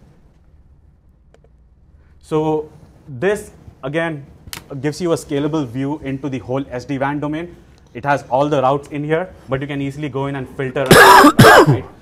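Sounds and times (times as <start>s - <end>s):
low room hum: 0.0s - 12.0s.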